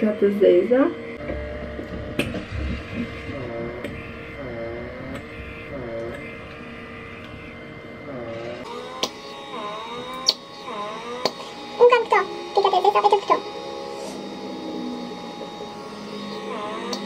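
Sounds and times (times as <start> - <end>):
pore vacuum humming: 0.0 - 17.0.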